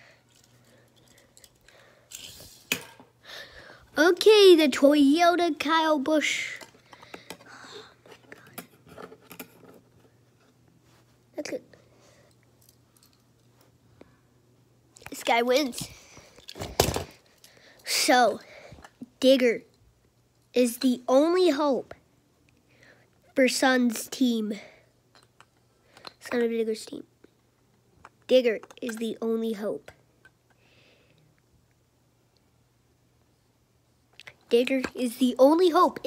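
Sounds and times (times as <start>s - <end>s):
person speaking: 3.9s - 6.7s, 15.0s - 16.1s.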